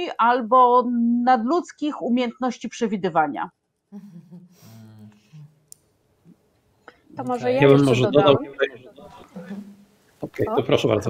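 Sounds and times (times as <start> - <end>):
low voice murmur: 4.0 - 5.5
person speaking: 4.0 - 5.6, 7.1 - 11.0.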